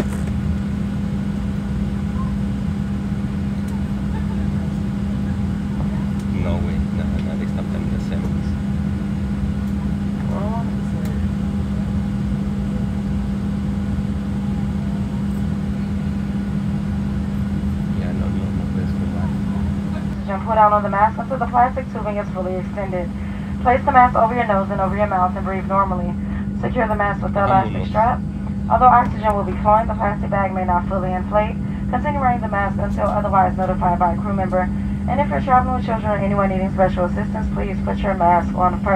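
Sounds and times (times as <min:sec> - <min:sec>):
aircraft cabin drone: 0:00.0 - 0:38.9
faint passenger voices: 0:00.0 - 0:38.9.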